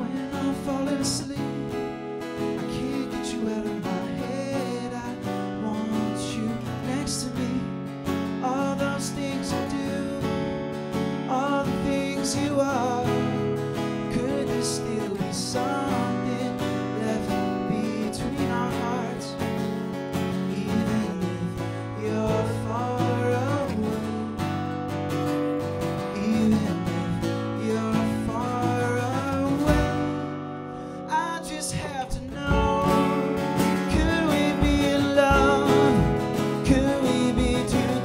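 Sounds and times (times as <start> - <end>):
man singing: 0.0 - 38.0
strummed acoustic guitar: 0.0 - 38.0.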